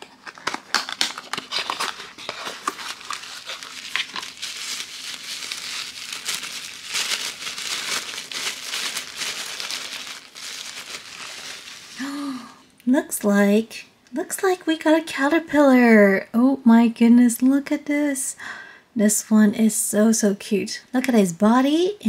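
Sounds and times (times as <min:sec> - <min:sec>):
cardboard tearing: 0:00.0 - 0:12.0
wrapping crinkling: 0:00.0 - 0:12.4.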